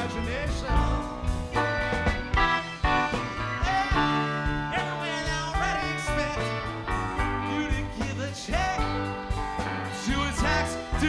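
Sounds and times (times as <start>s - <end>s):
bass: 0.0s - 11.0s
drums: 0.0s - 11.0s
electric guitar lead: 0.0s - 11.0s
keyboards: 0.0s - 11.0s.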